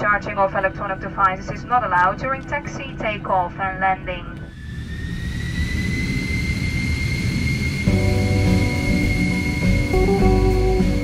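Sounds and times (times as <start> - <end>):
jet engines spooling up: 0.3 - 11.0
guitar background music: 7.9 - 11.0.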